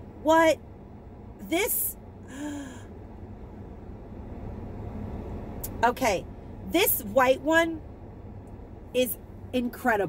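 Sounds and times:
low steady rumble: 0:00.0 - 0:10.0.

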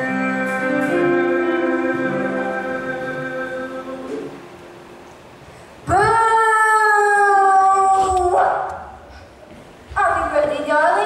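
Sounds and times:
person singing long note: 0:00.0 - 0:04.9.

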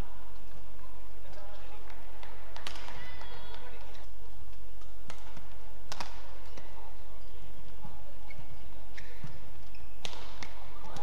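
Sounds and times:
racket hitting shuttlecock: 0:01.3 - 0:06.8, 0:08.9 - 0:11.0
faint high squeaks: 0:08.2 - 0:10.1.

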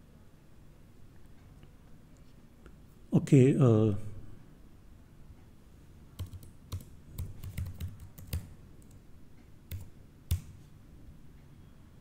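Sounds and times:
computer keyboard typing: 0:06.2 - 0:09.0, 0:09.7 - 0:10.6.

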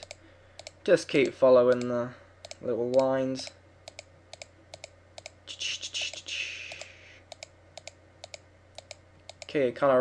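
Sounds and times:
computer mouse clicking: 0:00.0 - 0:03.2, 0:03.8 - 0:05.4, 0:06.0 - 0:09.6.

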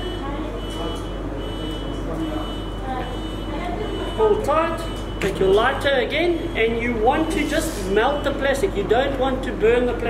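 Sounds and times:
background chatter of voices: 0:00.0 - 0:10.0
steady low hum: 0:00.0 - 0:10.0.

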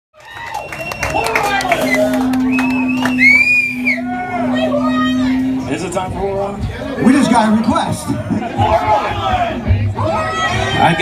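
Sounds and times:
crowd cheering: 0:00.2 - 0:11.0.

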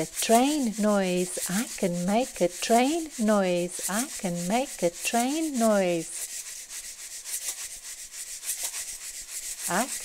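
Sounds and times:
rhythmic hissing chug: 0:00.0 - 0:07.2, 0:09.5 - 0:10.0.

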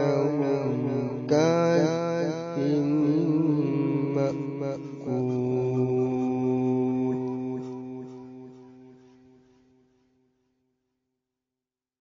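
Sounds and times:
man reciting melodically: 0:00.0 - 0:08.9.

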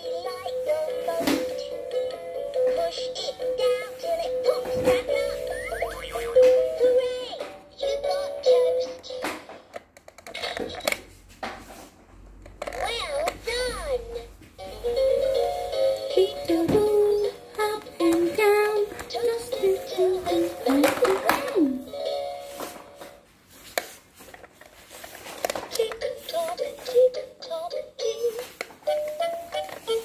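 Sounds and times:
sliding sound effects: 0:05.0 - 0:06.6
electronic toy tune: 0:05.3 - 0:06.7.

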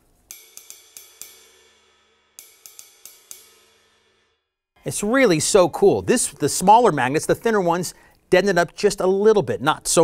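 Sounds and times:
cymbal struck with a stick: 0:00.3 - 0:04.7.

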